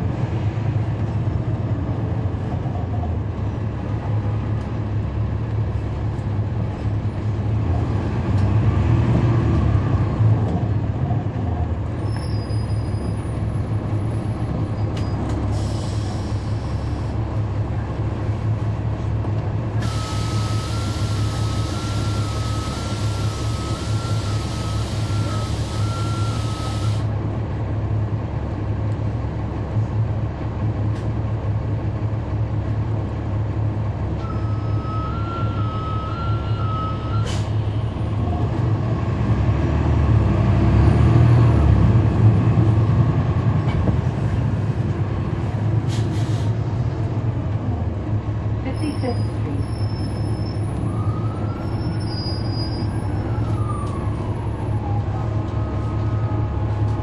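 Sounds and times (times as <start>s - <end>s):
bus diesel engine running: 0.0s - 57.0s
hiss of air: 15.5s - 16.9s, 45.9s - 46.6s.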